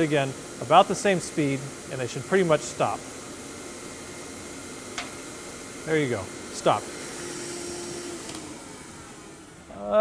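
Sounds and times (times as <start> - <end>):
air track blower hiss: 0.0 - 10.0.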